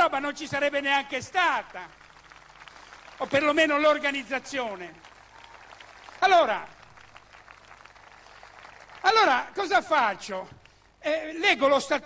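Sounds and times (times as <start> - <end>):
light scattered clapping: 1.4 - 9.4.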